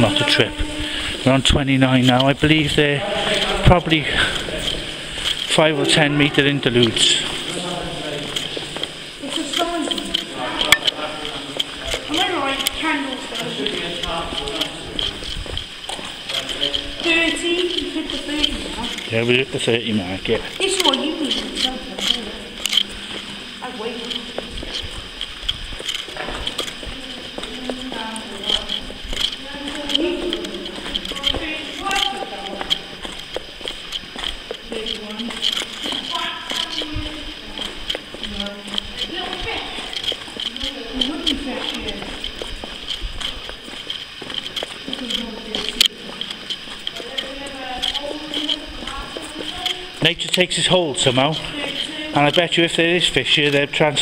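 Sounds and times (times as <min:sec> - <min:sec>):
indistinct voices talking: 0:00.0 - 0:54.0.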